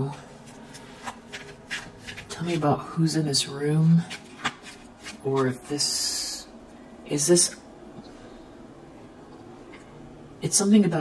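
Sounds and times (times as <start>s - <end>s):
cards being shuffled: 0.4s - 2.6s, 4.1s - 5.5s.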